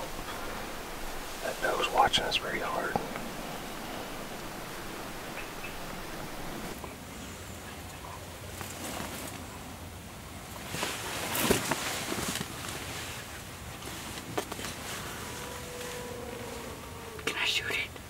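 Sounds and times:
people whispering: 0.0 - 6.8, 17.2 - 18.0.

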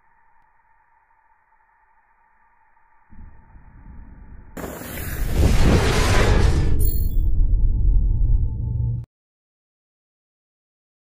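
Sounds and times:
faint steady tones: 0.0 - 4.6
low rumble: 3.1 - 9.1
loud rushing noise: 4.5 - 7.4.

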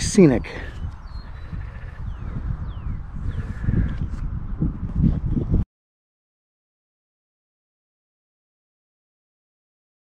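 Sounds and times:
wind buffeting microphone: 0.0 - 5.7.

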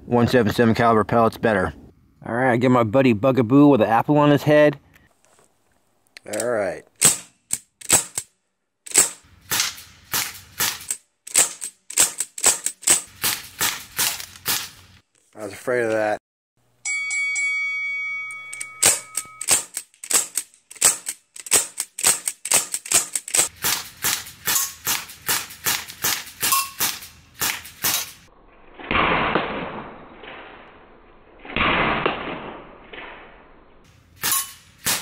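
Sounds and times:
air rifle shots: 7.0 - 8.3, 8.9 - 14.9, 18.8 - 30.6, 31.5 - 33.2, 34.2 - 35.0.

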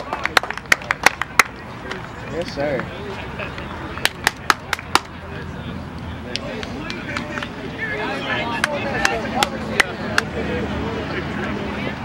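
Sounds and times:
hand claps: 0.0 - 2.0, 4.0 - 5.1, 6.3 - 7.5, 8.6 - 10.3.

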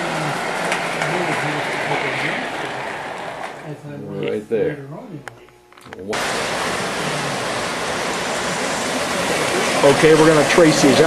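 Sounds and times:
model train wheels rolling: 0.0 - 3.7, 6.2 - 11.0.

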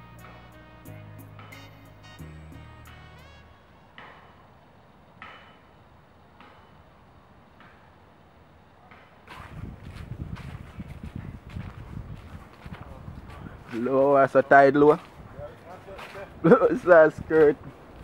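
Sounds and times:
background music: 0.0 - 4.4
footsteps crunching through leaves: 9.3 - 16.6.

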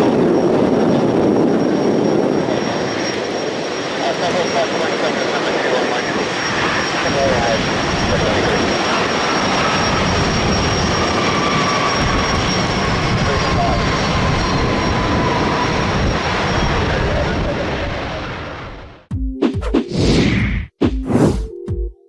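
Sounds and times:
jet engines roaring: 0.0 - 19.1.

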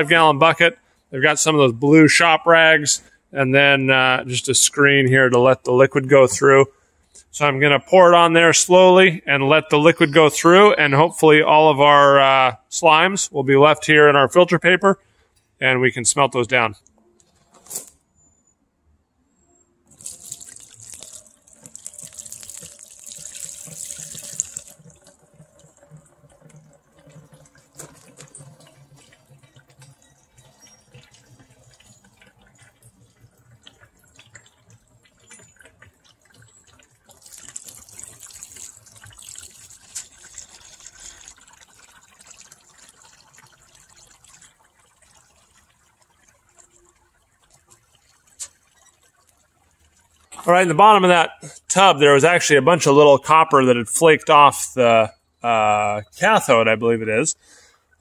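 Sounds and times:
liquid pouring and splashing: 19.9 - 54.0.

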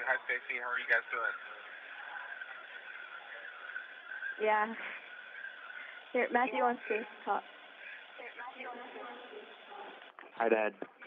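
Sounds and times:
radio link hiss: 0.0 - 11.0.

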